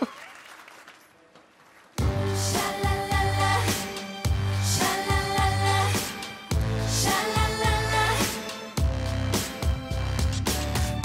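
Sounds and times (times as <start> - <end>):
light audience applause: 0.0 - 2.0.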